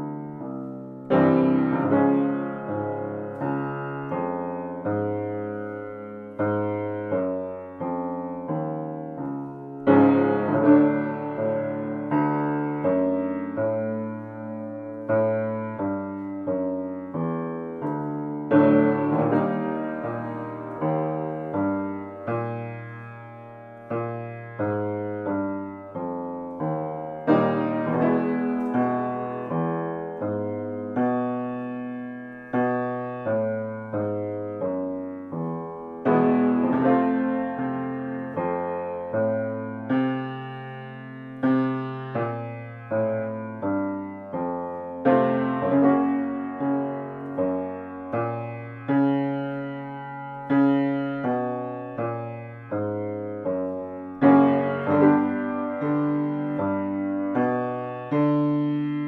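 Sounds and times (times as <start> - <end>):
grand piano warm-up pattern: 0.0 - 59.0.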